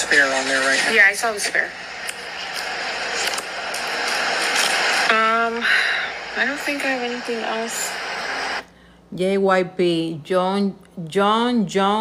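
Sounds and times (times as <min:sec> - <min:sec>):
steady rushing noise: 0:00.0 - 0:08.6.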